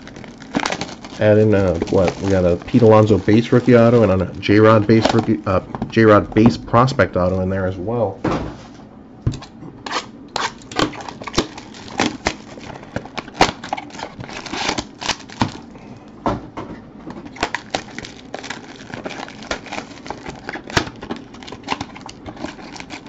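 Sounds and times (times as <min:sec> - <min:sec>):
card packs crinkling: 0:00.0 - 0:07.7, 0:10.4 - 0:16.2, 0:17.2 - 0:23.0.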